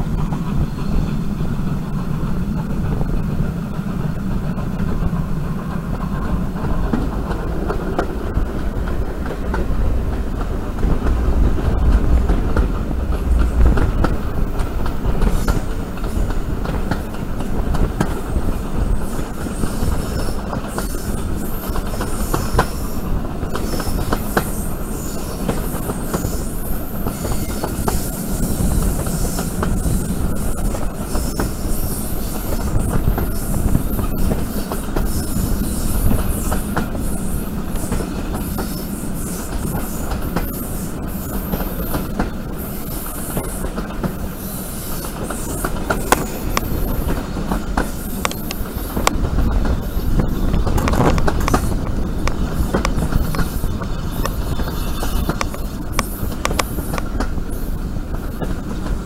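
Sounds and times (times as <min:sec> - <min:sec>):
train wheels rumbling: 0:00.0 - 0:59.0
wheels clicking over rail joints: 0:00.0 - 0:59.0
wheel flanges squealing: 0:18.2 - 0:58.8.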